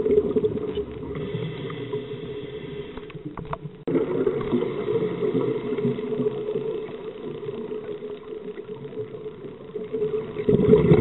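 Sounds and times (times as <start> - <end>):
faint steady hum: 0.0 - 11.0
underwater regulator bubbles: 0.0 - 11.0.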